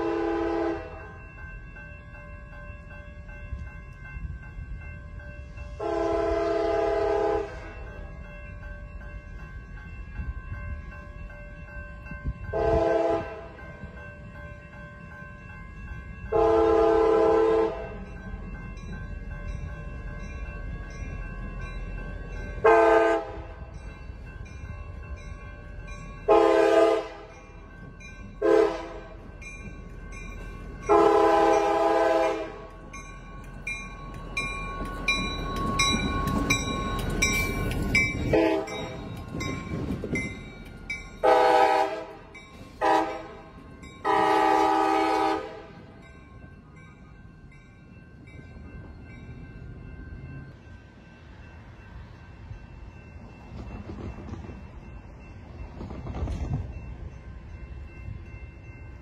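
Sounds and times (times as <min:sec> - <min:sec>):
locomotive air horn blasts: 0:00.0 - 0:01.0, 0:05.8 - 0:07.8, 0:12.5 - 0:13.5, 0:16.3 - 0:17.8, 0:22.6 - 0:23.6, 0:26.3 - 0:27.3, 0:28.4 - 0:29.1, 0:30.9 - 0:32.7, 0:38.3 - 0:39.0, 0:41.2 - 0:42.2, 0:42.8 - 0:45.9
crossing bell ringing: 0:00.0 - 0:59.0
train wheel noise: 0:00.0 - 0:59.0
locomotive engine rumble: 0:16.4 - 0:46.0.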